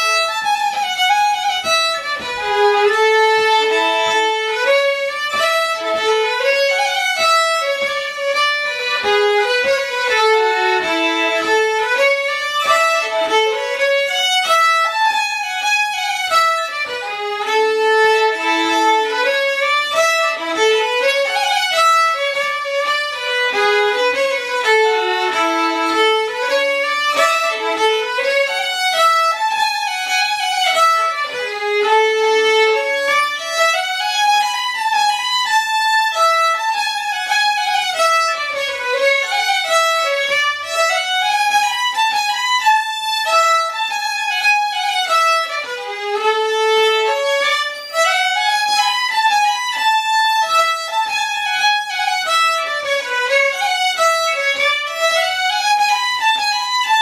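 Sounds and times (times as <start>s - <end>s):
fiddles playing folk tune: 0.0s - 57.0s.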